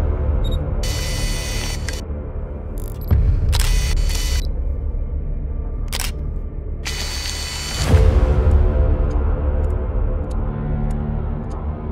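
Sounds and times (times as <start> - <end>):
deep bass drone: 0.0 - 11.9
camera shutter clicks: 0.8 - 2.0, 2.8 - 4.4, 5.9 - 6.2, 6.9 - 7.9.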